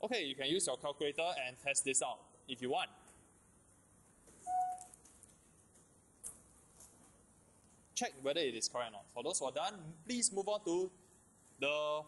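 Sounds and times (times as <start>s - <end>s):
high whistle-like tone: 4.5s - 4.9s.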